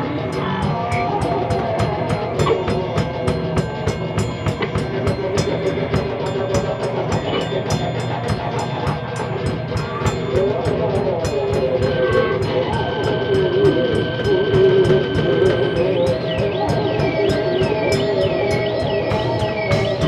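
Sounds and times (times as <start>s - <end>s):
live band playing droning piece: 0.0s - 20.0s
steady high tone: 0.0s - 20.0s.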